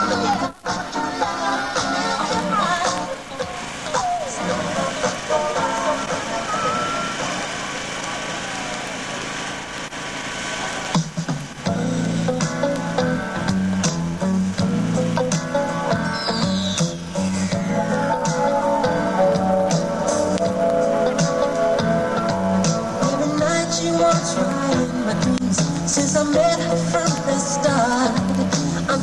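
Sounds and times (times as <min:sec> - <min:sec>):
music with heavy bass beat: 0:00.0 - 0:29.0.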